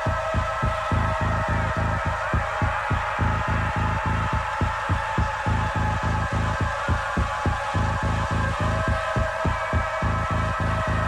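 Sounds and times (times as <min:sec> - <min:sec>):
pulsing bass pattern: 0:00.0 - 0:11.0.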